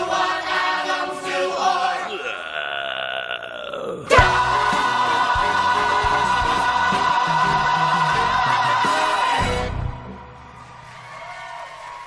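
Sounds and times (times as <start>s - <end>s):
ensemble singing with backing track: 0.0s - 10.4s.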